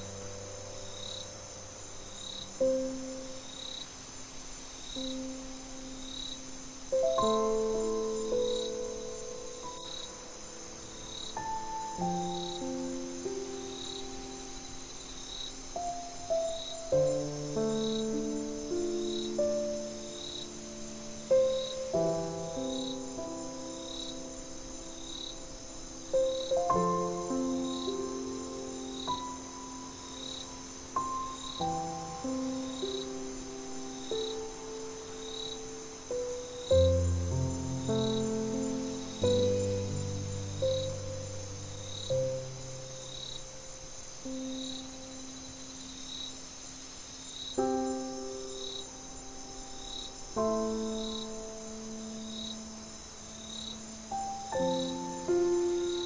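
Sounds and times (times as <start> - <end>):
gentle solo piano melody: 0.0 - 3.8, 4.9 - 46.5, 47.5 - 56.0
cricket chirps: 0.0 - 56.0
high cricket trill: 0.0 - 56.0.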